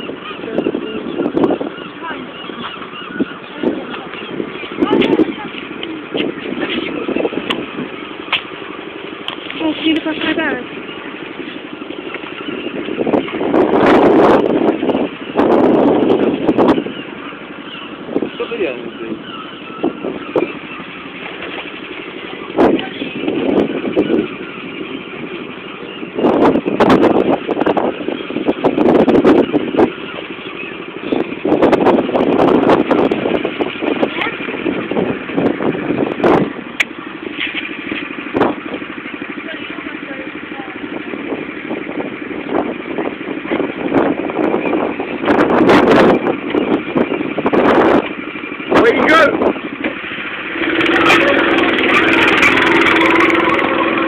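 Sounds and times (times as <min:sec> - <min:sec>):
go-kart engines running: 0:00.0 - 0:54.0.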